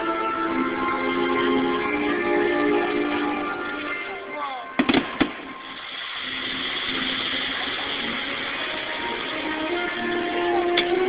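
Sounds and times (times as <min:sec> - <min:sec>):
fireworks show music: 0:00.0 - 0:11.0
steady rushing background: 0:01.3 - 0:10.7
firework bangs: 0:04.7 - 0:09.4.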